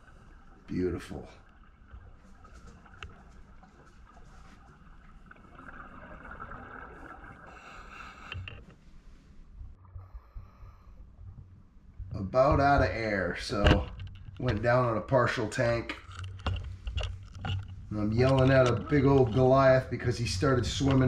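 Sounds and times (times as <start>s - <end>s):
bubbling of exhaled air: 5.4s - 8.5s
scuba regulator breathing: 7.4s - 9.1s.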